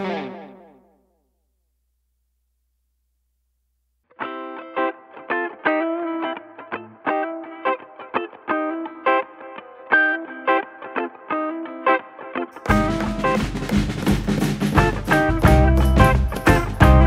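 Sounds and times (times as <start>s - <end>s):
plucked riff music: 0.0s - 0.8s, 4.1s - 17.0s.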